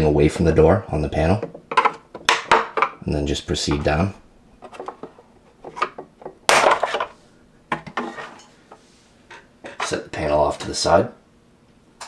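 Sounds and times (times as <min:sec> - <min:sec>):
hard plastic clattering: 0:01.4 - 0:03.0, 0:04.6 - 0:08.4.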